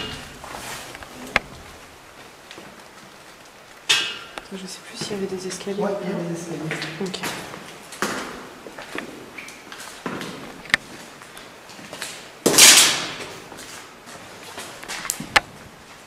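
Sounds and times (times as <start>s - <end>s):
loud scrape or rustle: 0.0s - 1.2s.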